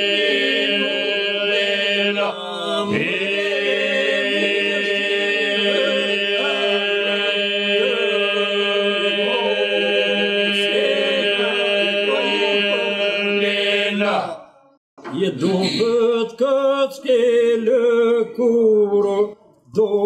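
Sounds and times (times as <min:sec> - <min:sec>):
men singing low drone: 0:00.0 - 0:14.4.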